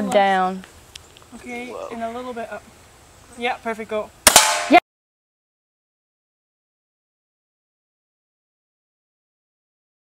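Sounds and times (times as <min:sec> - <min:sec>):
gunshots: 0:04.3 - 0:04.8.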